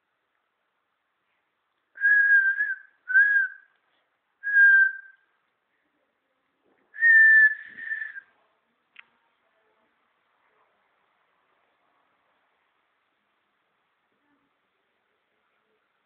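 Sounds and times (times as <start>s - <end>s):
person whistling short notes: 7.0s - 8.2s.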